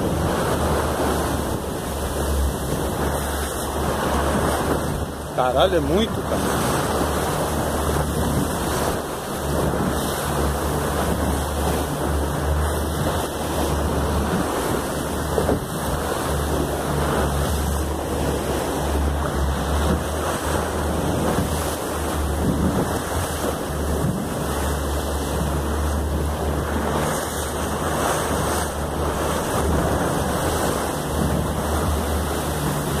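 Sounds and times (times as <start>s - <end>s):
rush of sea water: 0.0s - 33.0s
wind rumbling on microphone: 0.0s - 33.0s.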